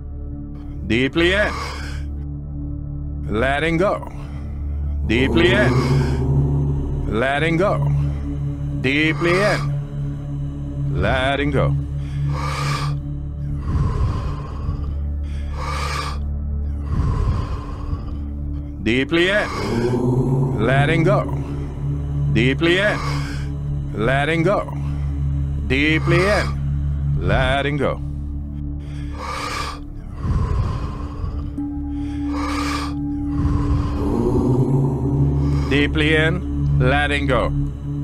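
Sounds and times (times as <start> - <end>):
background music with low drone: 0.0 - 38.0
person breathing deeply: 0.5 - 3.2, 4.1 - 38.0.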